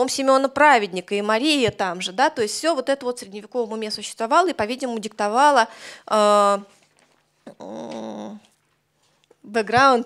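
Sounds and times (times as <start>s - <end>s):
woman saying uh: 7.5s - 8.5s.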